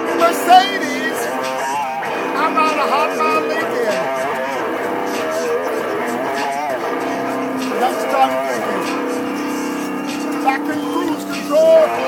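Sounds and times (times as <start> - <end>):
electric guitar: 0.0 - 12.0
wavering wordless voice: 0.2 - 12.0.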